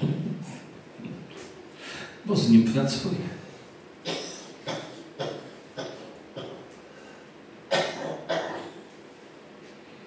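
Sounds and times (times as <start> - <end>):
man coughing: 4.0 - 6.7, 7.7 - 8.8.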